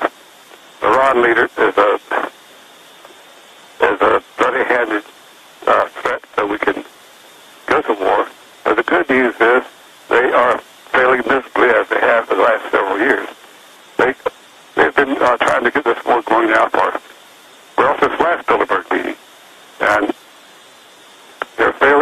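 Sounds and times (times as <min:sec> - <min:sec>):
man talking over telephone line: 0:00.8 - 0:02.3, 0:03.8 - 0:06.9, 0:07.7 - 0:13.4, 0:14.0 - 0:17.1, 0:17.8 - 0:19.2, 0:19.8 - 0:20.2, 0:21.4 - 0:22.0.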